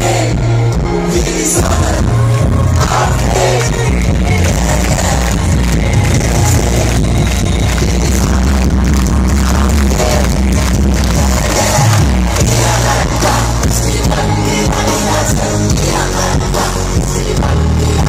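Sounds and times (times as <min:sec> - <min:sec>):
heavy bass line: 0:00.0 - 0:18.0
live hip-hop music: 0:00.0 - 0:18.0.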